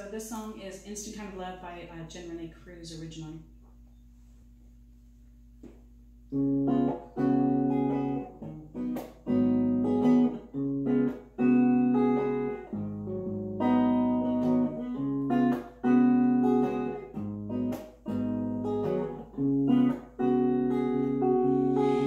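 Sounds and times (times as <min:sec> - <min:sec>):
clean electric guitar chords: 0:06.2 - 0:22.0.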